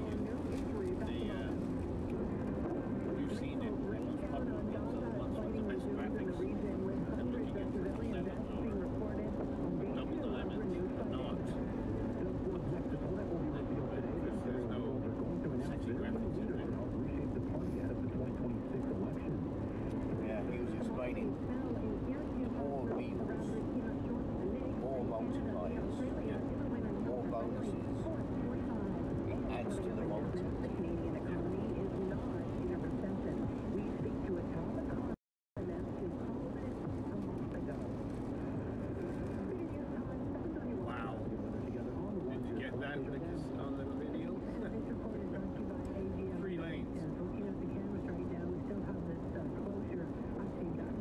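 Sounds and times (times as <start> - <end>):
car road and engine noise: 0.0 - 51.0
faint indistinct voices: 0.0 - 51.0.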